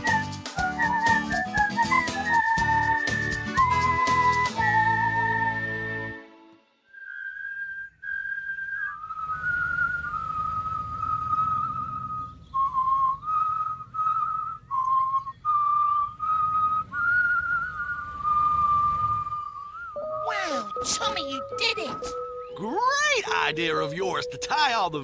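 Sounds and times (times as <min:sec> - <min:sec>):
person whistling a tune: 0:00.0 - 0:06.0, 0:06.9 - 0:22.6.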